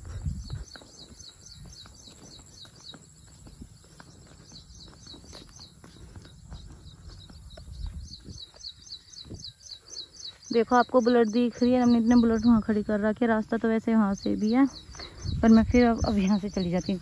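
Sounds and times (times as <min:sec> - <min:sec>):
bird chirping rapidly: 0:04.3 - 0:17.0.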